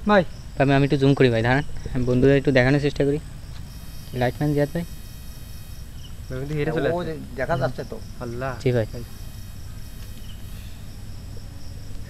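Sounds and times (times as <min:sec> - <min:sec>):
crickets chirping: 0:00.0 - 0:12.0
man speaking: 0:04.1 - 0:05.0, 0:06.3 - 0:09.1.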